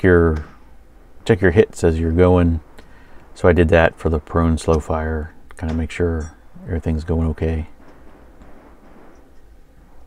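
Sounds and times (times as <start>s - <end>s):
low-pitched background noise: 0.0s - 10.0s.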